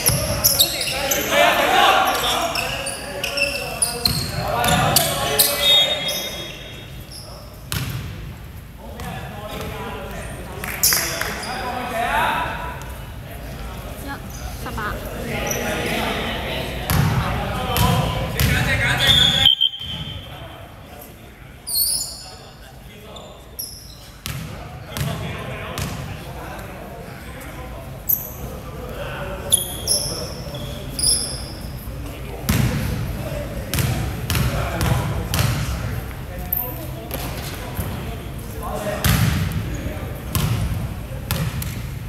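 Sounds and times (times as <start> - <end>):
sneakers squeaking: 0.0 - 8.2, 10.7 - 11.8, 17.8 - 20.4, 21.6 - 22.5, 23.1 - 25.2, 29.4 - 31.9, 39.0 - 40.7, 41.3 - 41.9
players' voices echoing: 0.0 - 21.6.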